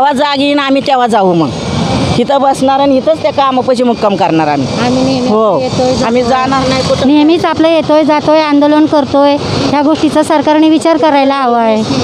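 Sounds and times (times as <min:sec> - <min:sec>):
street traffic hum: 0:00.0 - 0:12.0.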